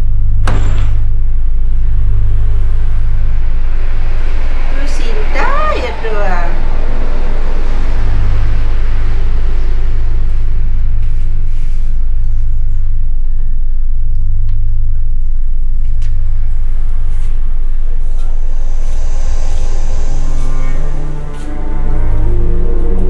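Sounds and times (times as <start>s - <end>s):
deep rumbling drone: 0.0s - 23.0s.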